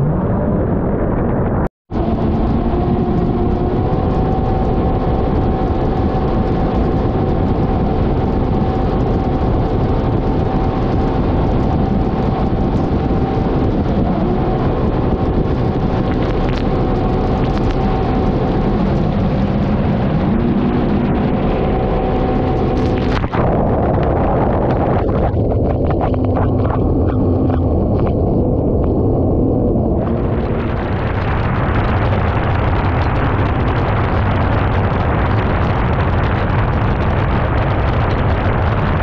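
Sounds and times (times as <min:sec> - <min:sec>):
jet ski engine at high throttle: 0:01.9 - 0:39.0
rush of wind and water spray: 0:30.0 - 0:39.0.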